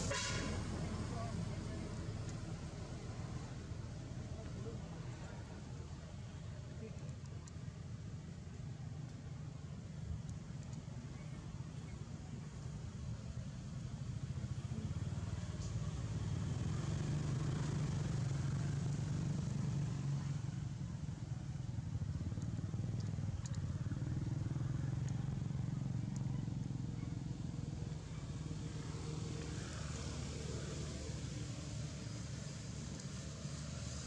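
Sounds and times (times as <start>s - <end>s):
vehicle engine rumble: 0.0s - 34.0s
faint clicks: 7.0s - 7.6s, 10.2s - 10.9s, 22.3s - 24.0s.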